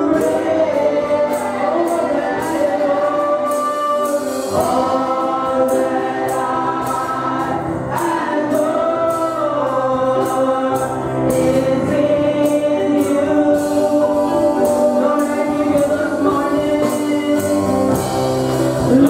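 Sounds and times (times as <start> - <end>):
chorus of voices singing: 0.0 - 19.0
steady percussion beat: 0.0 - 19.0.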